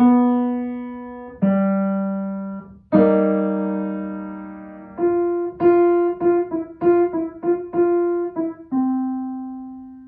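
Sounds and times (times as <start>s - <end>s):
piano playing slow single notes: 0.0s - 10.0s.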